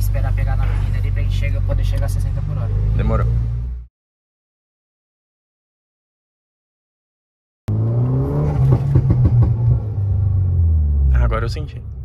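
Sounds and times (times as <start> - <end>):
car engine accelerating: 0.0 - 3.9, 7.7 - 12.0.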